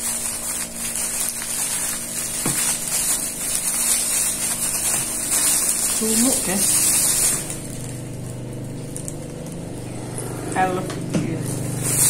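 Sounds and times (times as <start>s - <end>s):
low motor hum: 0.0s - 12.0s.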